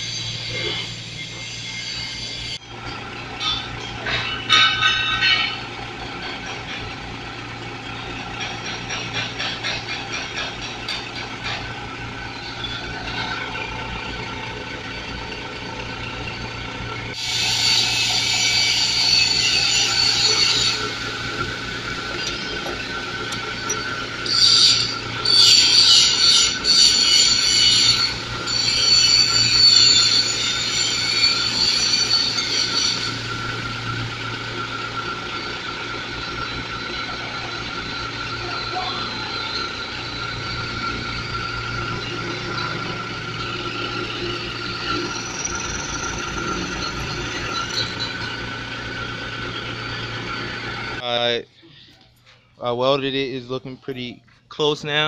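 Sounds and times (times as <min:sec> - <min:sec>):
drill bit cutting metal: 0:17.2 - 0:21.5, 0:22.1 - 0:33.9, 0:36.4 - 0:48.4.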